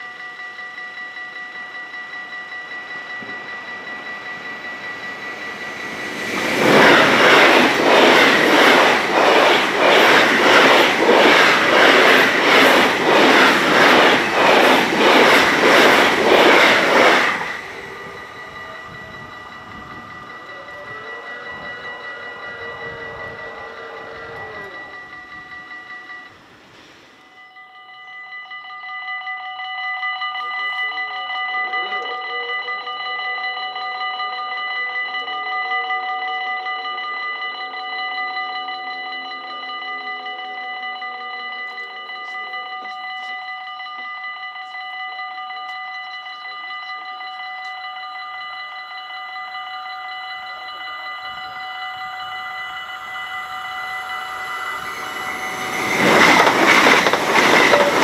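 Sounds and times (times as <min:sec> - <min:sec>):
approaching high-speed train: 0:00.0 - 0:28.0, 0:46.4 - 0:58.0
level-crossing warning bells: 0:00.0 - 0:58.0.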